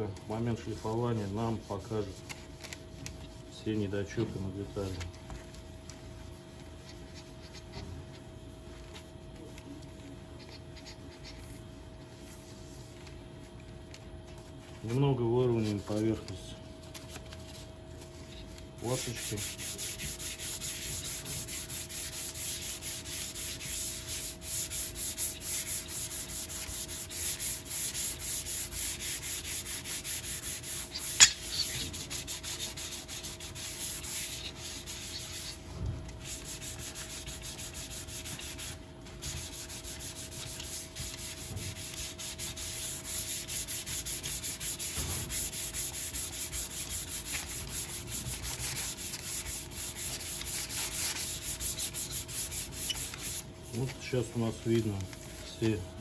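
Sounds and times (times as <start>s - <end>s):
hand sanding with abrasive pad: 0.3s - 5.0s, 14.9s - 16.5s, 18.2s - 55.8s.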